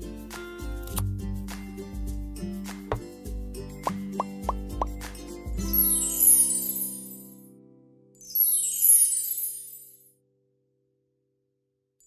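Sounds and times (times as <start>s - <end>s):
background music: 0.0s - 7.0s
rising plop sound effects: 3.9s - 5.0s.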